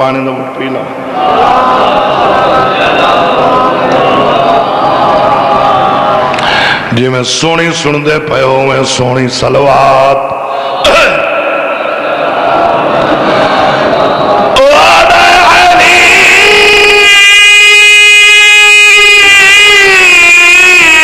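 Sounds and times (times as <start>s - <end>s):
group chanting together: 1.0s - 6.6s, 10.3s - 17.3s
man singing amplified: 6.1s - 12.0s, 14.5s - 21.0s.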